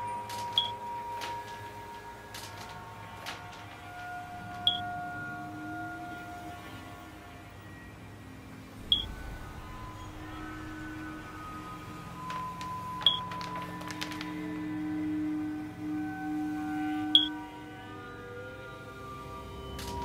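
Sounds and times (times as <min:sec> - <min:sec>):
sustained musical drone: 0:00.0 - 0:20.0
high-pitched electronic beeps: 0:00.5 - 0:00.8, 0:08.9 - 0:10.3.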